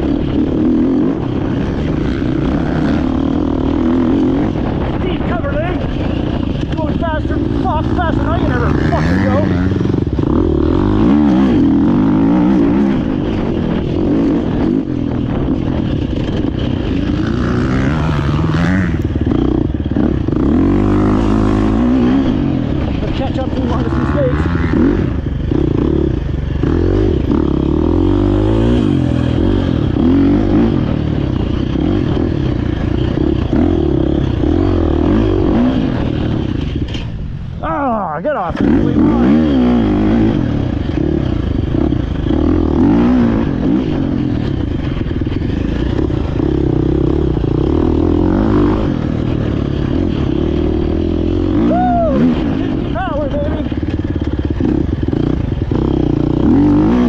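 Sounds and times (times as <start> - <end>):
motorcycle engine revving: 0.0 - 57.0.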